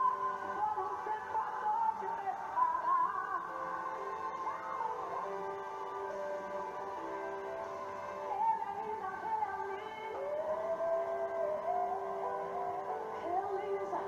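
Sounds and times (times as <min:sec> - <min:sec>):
woman singing gospel song: 0:00.0 - 0:05.6, 0:08.3 - 0:14.0.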